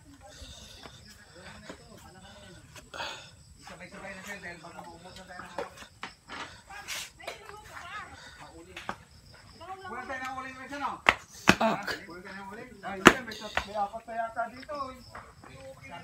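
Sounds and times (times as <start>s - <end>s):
people talking: 0.0s - 16.0s.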